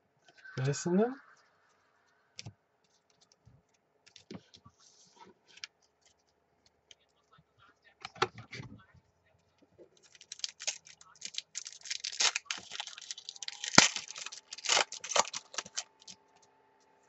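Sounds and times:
foil wrapper tearing and crinkling: 10.0s - 16.2s.

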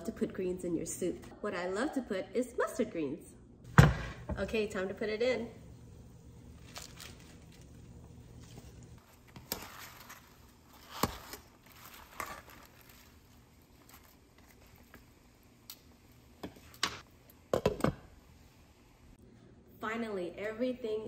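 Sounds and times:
greens rustling in a pot: 6.5s - 15.5s.

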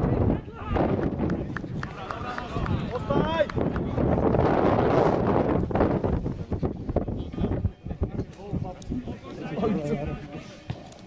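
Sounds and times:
voices shouting outdoors: 0.0s - 3.6s
wind buffeting microphone: 0.0s - 10.4s.

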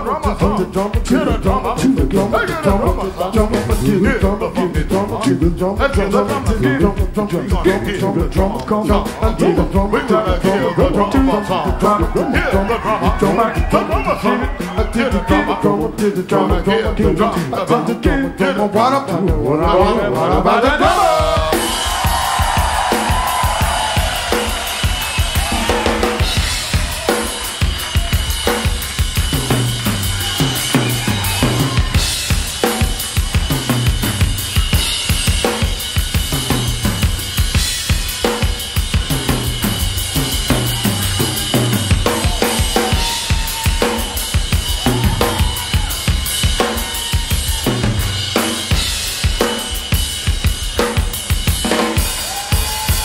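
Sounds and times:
drum solo: 0.0s - 53.0s.

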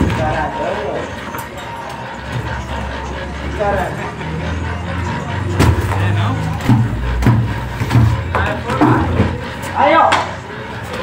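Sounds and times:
engine humming: 0.0s - 11.0s.

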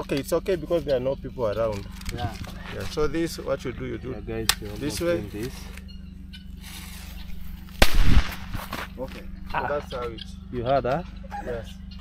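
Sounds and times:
firecracker bang: 7.8s - 9.0s.

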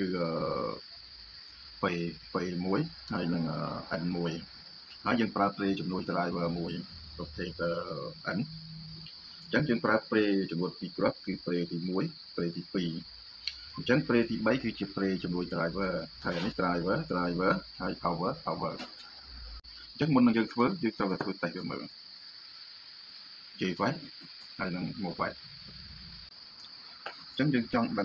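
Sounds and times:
steady high-pitched whine: 0.0s - 28.0s
person talking: 1.8s - 4.4s, 5.0s - 8.5s, 13.8s - 18.9s, 20.0s - 21.9s, 23.6s - 25.4s, 27.4s - 28.0s.

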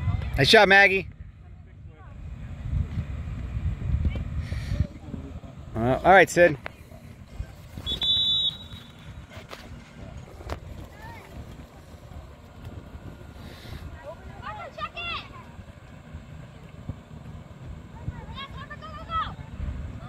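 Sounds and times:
wind: 0.0s - 20.0s
referee's whistle blast: 7.8s - 9.0s.

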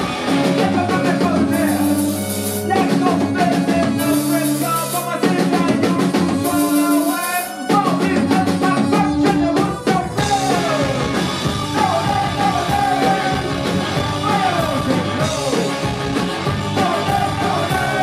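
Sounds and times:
rock band playing live: 0.0s - 18.0s
lead vocalist singing: 0.3s - 18.0s.

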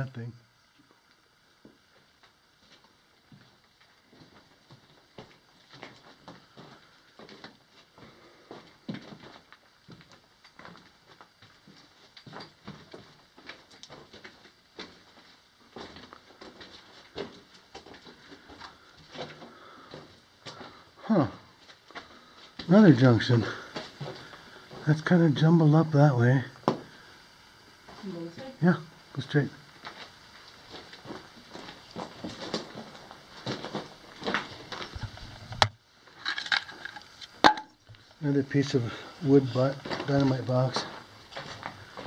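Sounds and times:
footsteps crunching on gravel: 29.8s - 35.4s, 39.6s - 42.0s.

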